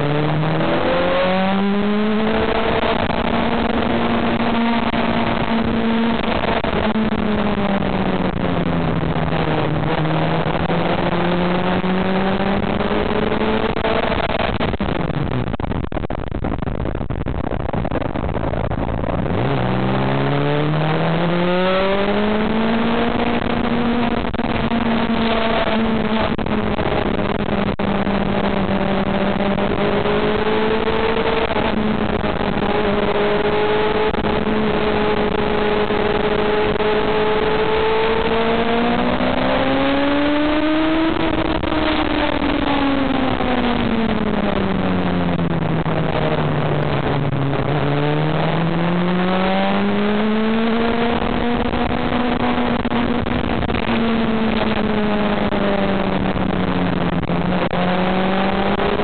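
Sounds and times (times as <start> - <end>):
motorcycle engine: 0.0 - 59.0
wind and road noise: 0.0 - 59.0.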